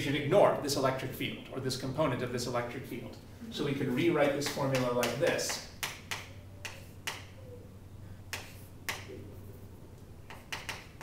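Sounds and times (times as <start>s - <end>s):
faint low hum: 0.0s - 11.0s
chalk tapping on blackboard: 4.3s - 7.3s, 8.3s - 9.1s, 10.2s - 11.0s.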